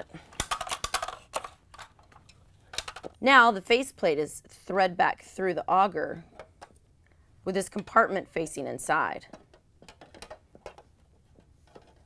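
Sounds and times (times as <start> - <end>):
plastic parts clicking and knocking: 0.2 - 3.2, 6.3 - 6.8, 9.2 - 12.0.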